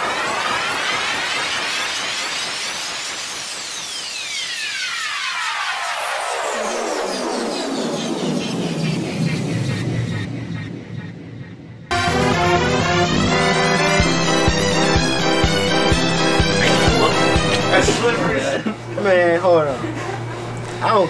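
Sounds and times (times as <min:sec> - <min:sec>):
whining sound effect: 0:00.0 - 0:18.0.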